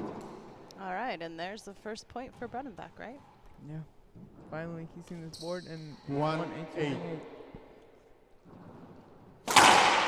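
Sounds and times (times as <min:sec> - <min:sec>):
racquet hitting ball: 0:00.0 - 0:00.6, 0:08.5 - 0:10.0.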